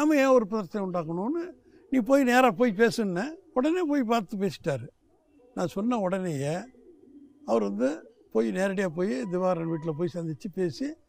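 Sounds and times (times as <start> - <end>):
man talking: 0.0 - 4.9, 5.6 - 6.7, 7.5 - 11.0.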